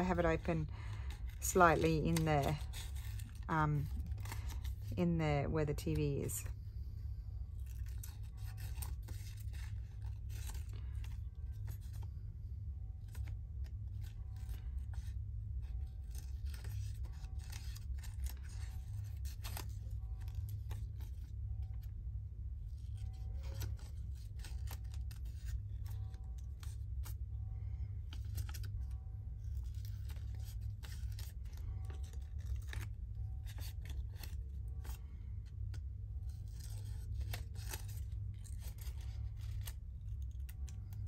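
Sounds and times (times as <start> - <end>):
scissors snipping paper: 0.0 - 6.4, 13.0 - 21.9, 28.1 - 41.0
low hum: 0.0 - 41.0.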